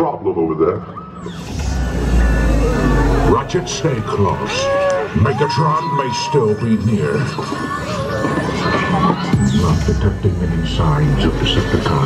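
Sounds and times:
deep rumble: 1.3s - 5.5s
music over loudspeakers: 3.2s - 12.0s.

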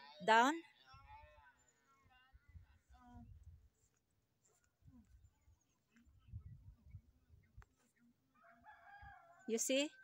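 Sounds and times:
rooster crowing: 8.3s - 10.0s.

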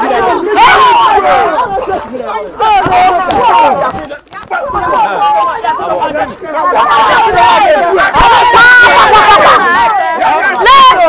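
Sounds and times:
people arguing loudly: 0.0s - 11.0s.

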